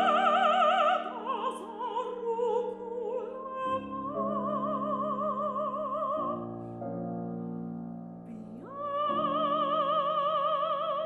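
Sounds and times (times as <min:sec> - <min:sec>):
soprano singing with vibrato: 0:00.0 - 0:06.8, 0:08.3 - 0:11.0
grand piano chords: 0:00.0 - 0:11.0.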